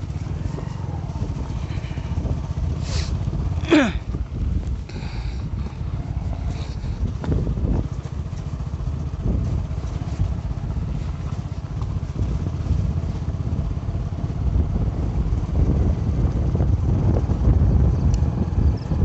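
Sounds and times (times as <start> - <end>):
motorcycle engine running: 0.0 - 19.0
rumble of tyres on gravel: 0.0 - 19.0.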